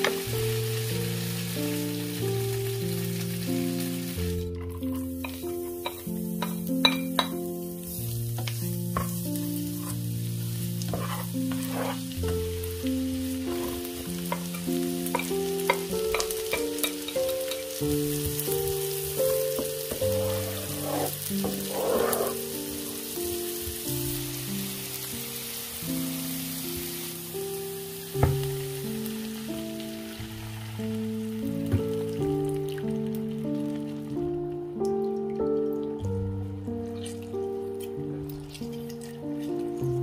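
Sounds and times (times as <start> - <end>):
shallots and garlic sizzling in pan: 0.0 - 35.0.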